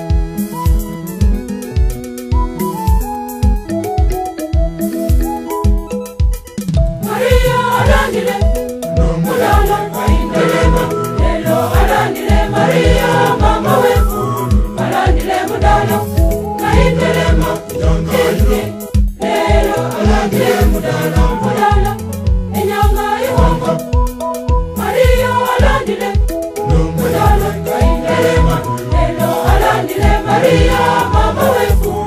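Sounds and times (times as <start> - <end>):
steady beat with low pulses: 6.7 - 32.0
choir singing gospel: 7.0 - 32.0.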